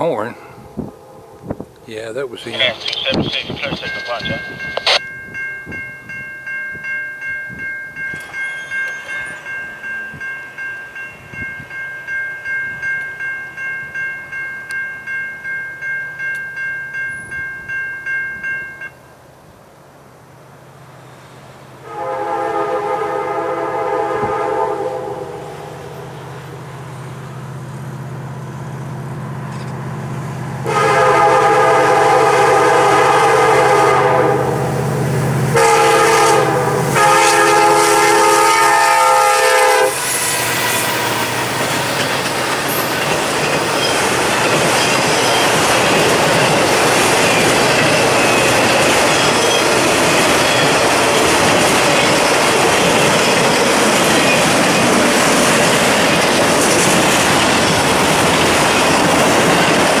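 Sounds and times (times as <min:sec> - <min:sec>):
locomotive air horn blasts: 0:21.8 - 0:26.0, 0:30.6 - 0:34.7, 0:35.5 - 0:41.8
train wheels clattering on rails: 0:40.0 - 1:00.0.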